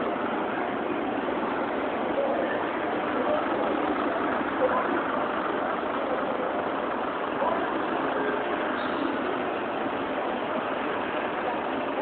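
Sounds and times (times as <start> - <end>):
faint voices of passers-by: 0.0 - 12.0
vehicle engines running: 0.0 - 12.0.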